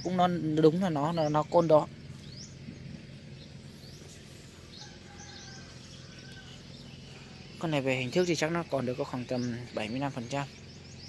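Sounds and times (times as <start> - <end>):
low steady hum: 0.0 - 11.0
small birds chirping: 0.0 - 11.0.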